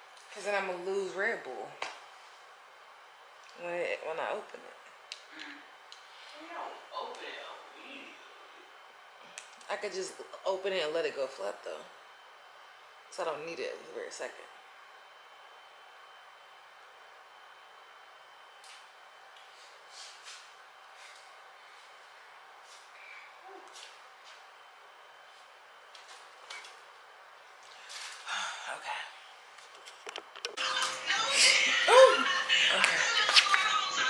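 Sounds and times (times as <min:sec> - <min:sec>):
faint hum and whine: 0:00.0 - 0:34.0.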